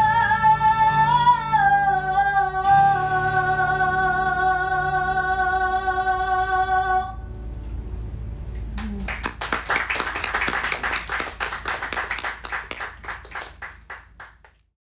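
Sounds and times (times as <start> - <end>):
audience applauding: 8.8 - 14.6.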